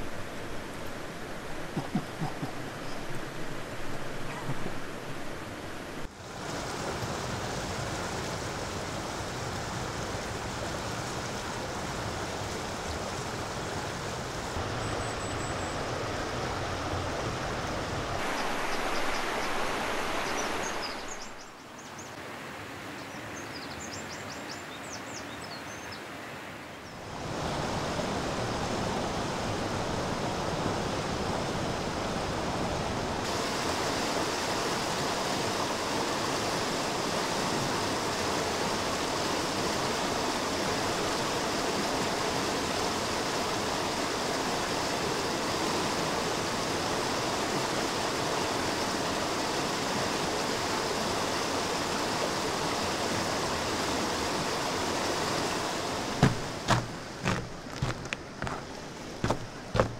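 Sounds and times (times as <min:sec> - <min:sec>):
stream rushing: 0:00.0 - 0:25.1, 0:25.8 - 0:59.9.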